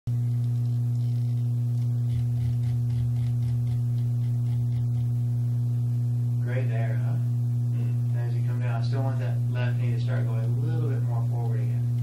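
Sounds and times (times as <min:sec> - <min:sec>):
low electrical hum: 0:00.1 - 0:12.0.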